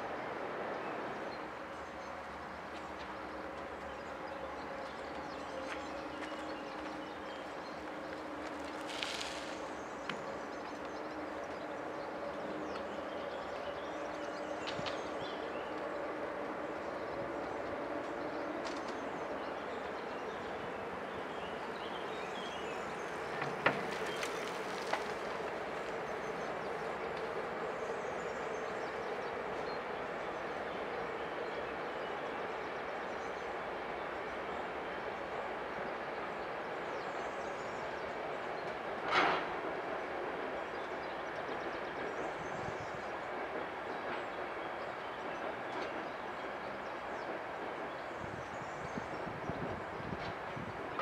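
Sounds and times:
train wheels on rail: 0.0 - 51.0.

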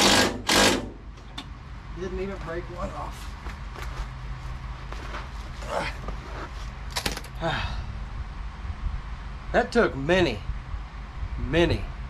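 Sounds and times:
steady low hum: 0.0 - 12.0
man grunting and breathing hard: 5.6 - 6.0, 7.4 - 8.0.

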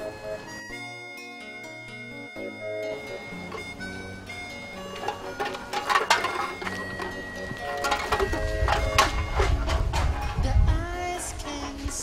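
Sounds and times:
background music: 0.0 - 12.0
cans and bottles clattering: 4.4 - 10.5.

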